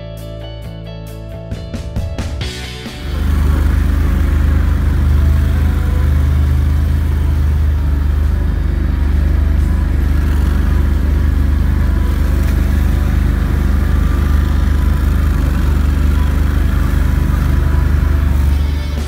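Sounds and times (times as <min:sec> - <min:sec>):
vehicle engine droning: 0:02.4 - 0:19.0.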